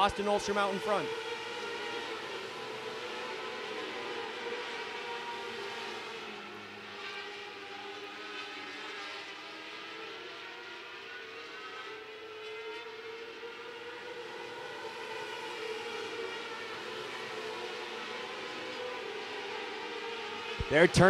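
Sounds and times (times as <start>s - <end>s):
race car engines at high revs: 0.0s - 21.0s.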